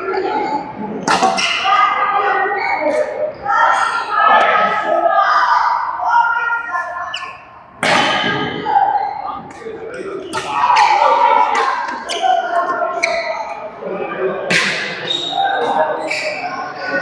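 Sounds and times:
voices chattering: 0.0 - 17.0.

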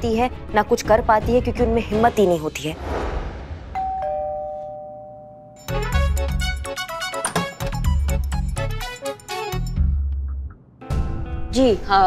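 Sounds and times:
doorbell ding-dong chime: 3.8 - 5.7.

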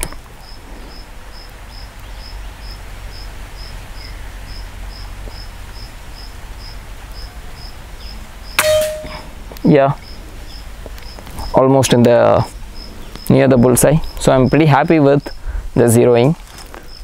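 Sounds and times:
insect chirping: 0.4 - 9.4, 12.6 - 15.6
metallic ring: 8.6 - 9.4.

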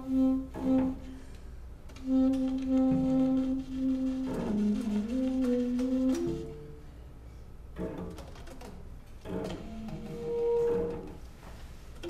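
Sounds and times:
bowed cello: 0.0 - 1.3, 2.0 - 6.9, 9.2 - 11.4
alto saxophone: 0.0 - 7.0, 9.4 - 11.2.

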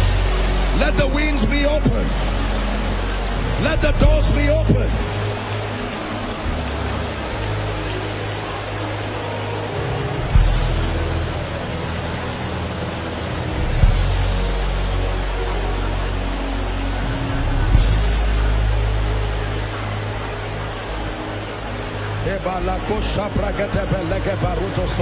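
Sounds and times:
congregation noise: 0.0 - 25.0
soft sustained chord music: 0.0 - 25.0.

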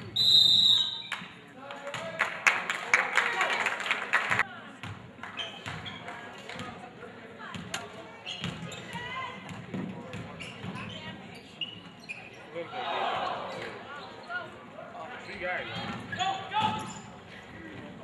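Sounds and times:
voices of spectators and players: 0.0 - 18.0.

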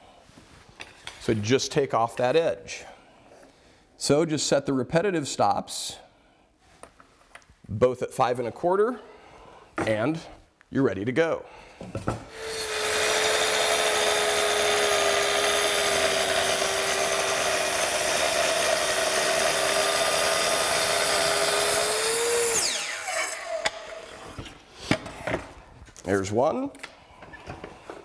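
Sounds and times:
track saw cutting wood: 12.3 - 24.5.

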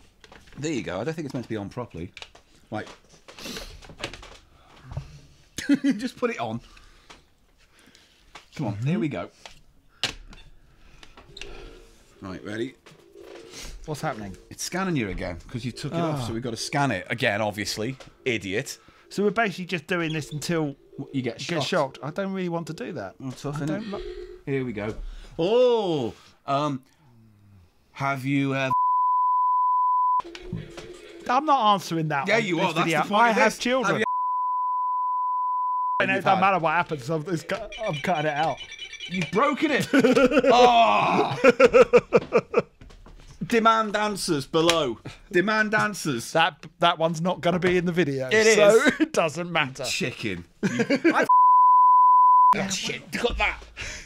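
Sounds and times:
censor bleep: 28.7 - 30.3, 34.0 - 36.1, 51.3 - 52.6.

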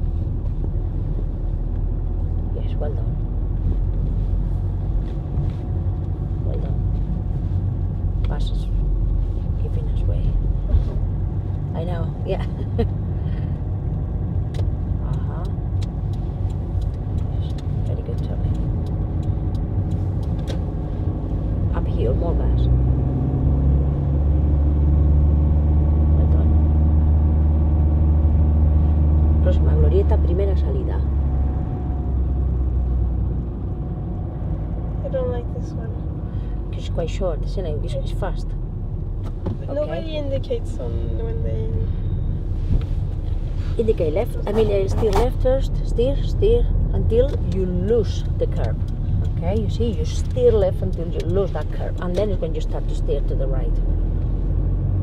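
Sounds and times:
car engine: 0.0 - 55.0
road rumble: 0.0 - 55.0.

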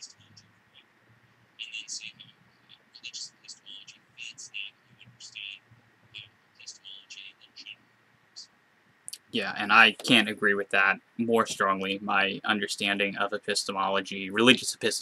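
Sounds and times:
garbled whisper-like speech: 0.0 - 0.9, 1.6 - 7.8, 9.1 - 15.0
faint low hum: 0.0 - 15.0.

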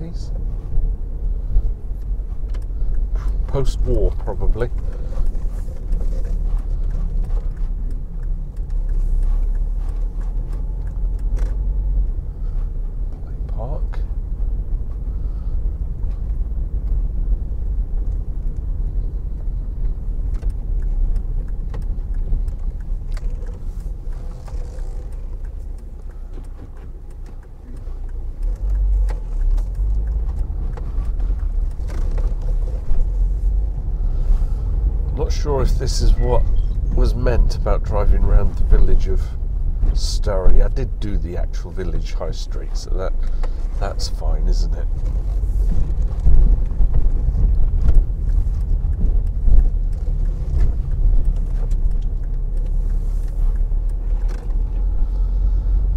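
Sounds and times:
car engine and tyres rumbling: 0.0 - 55.9.

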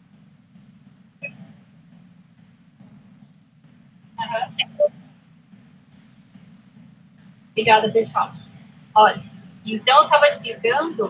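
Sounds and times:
low hum on audio line: 0.0 - 11.0.

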